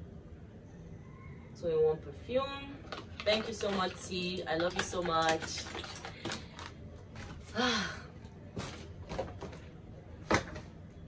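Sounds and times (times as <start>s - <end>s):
woman sighing: 7.5s - 8.2s.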